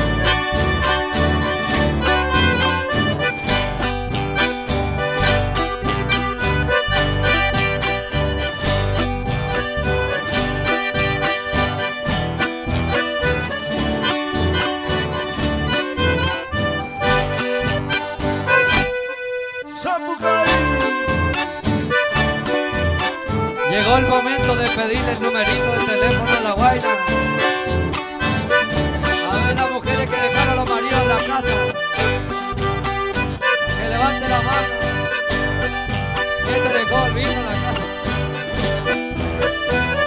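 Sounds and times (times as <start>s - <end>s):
accordion-led band music: 0.0s - 40.0s.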